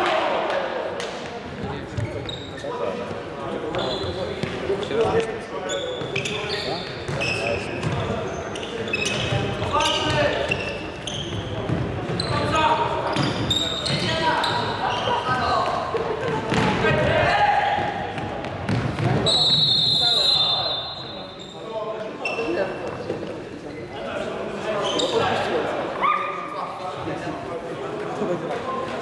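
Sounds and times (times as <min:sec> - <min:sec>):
referee's whistle: 0:19.2 - 0:21.6.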